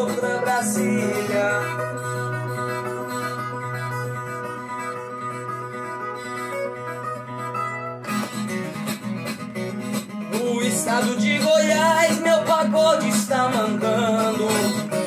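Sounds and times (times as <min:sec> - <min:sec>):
plucked folk guitar: 0:00.0 - 0:15.0.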